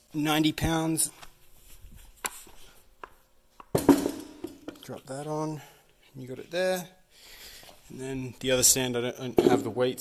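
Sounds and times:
dumbbell thud on stand: 3.8s - 4.7s.

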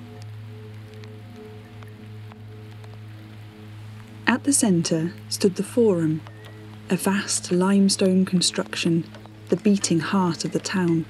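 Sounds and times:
ambient drone music: 0.0s - 11.0s
faint clicks and crackles: 0.0s - 11.0s
light hiss: 0.0s - 11.0s.

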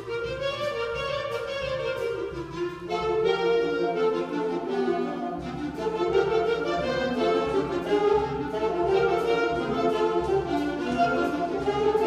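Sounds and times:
concert band playing square-dance tune: 0.0s - 12.0s.

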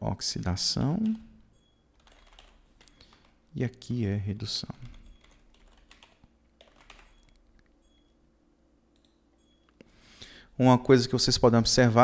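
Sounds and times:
keyboard keys clicking: 2.0s - 3.3s, 4.9s - 8.0s.

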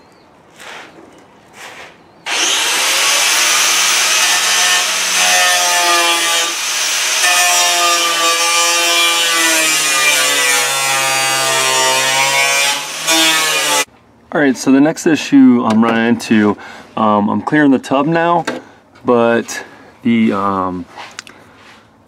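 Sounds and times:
power cutting tool cutting metal: 2.3s - 13.9s.

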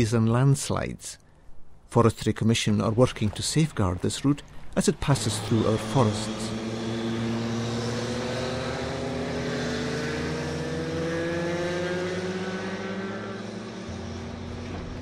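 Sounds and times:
motorcycle engines: 3.4s - 15.0s.

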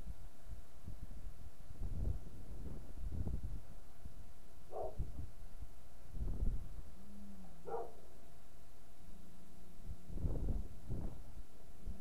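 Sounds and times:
dog barking in distance: 4.7s - 5.0s, 7.6s - 8.1s.

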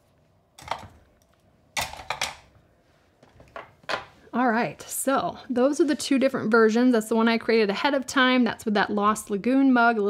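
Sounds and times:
craft tools clattering on desk: 1.8s - 2.5s.

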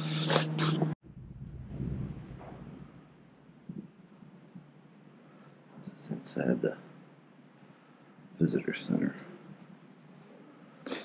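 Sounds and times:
low rumble on microphone: 1.0s - 4.7s.

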